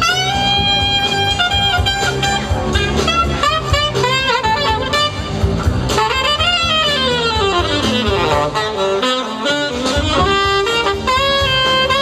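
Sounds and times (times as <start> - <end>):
horn band playing: 0.0 - 12.0
saxophone solo: 0.0 - 12.0.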